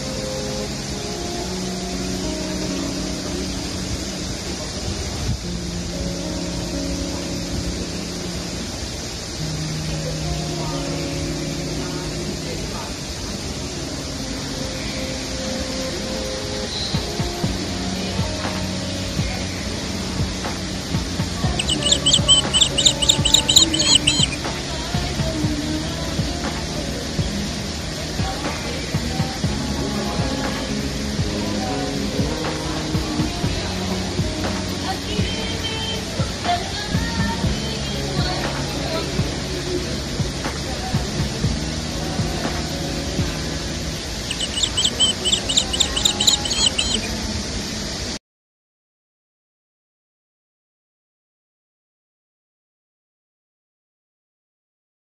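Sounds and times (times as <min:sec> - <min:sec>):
background music: 0:00.0 - 0:47.1
outdoor background noise: 0:00.0 - 0:48.2
songbird chirping: 0:18.2 - 0:25.6, 0:44.0 - 0:47.2.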